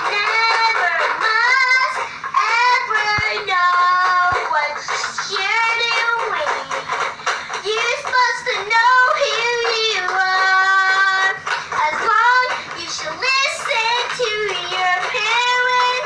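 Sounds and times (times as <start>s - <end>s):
girl singing in a high voice: 0.0s - 6.9s, 7.6s - 16.0s.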